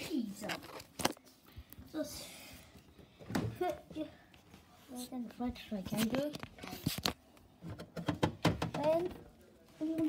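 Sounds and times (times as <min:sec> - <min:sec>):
child's voice: 0:01.9 - 0:02.4, 0:03.4 - 0:04.2, 0:04.9 - 0:06.4, 0:08.7 - 0:09.2, 0:09.8 - 0:10.0
items knocking inside fridge: 0:07.7 - 0:08.9.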